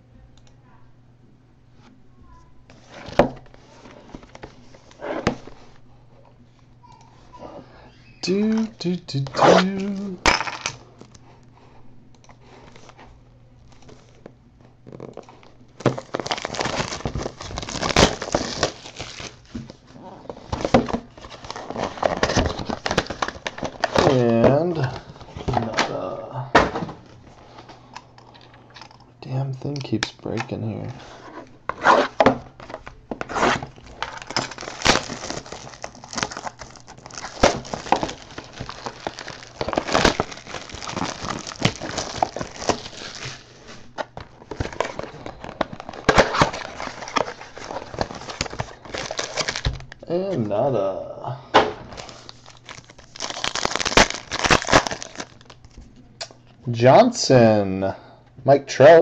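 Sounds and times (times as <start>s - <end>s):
person humming: 7.0s - 10.2s, 24.4s - 26.6s
wrappers tearing and crinkling: 14.9s - 26.2s, 31.8s - 49.9s, 51.8s - 55.8s.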